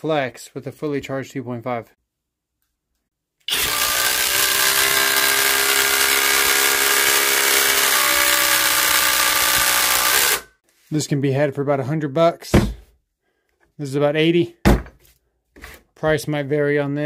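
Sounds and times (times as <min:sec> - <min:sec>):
impact driver driving screw into wood: 0:03.5 - 0:10.5.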